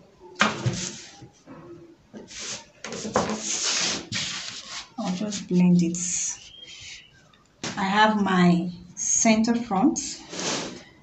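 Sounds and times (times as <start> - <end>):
plastic ruler rustling and scraping on paper: 2.3 - 5.6.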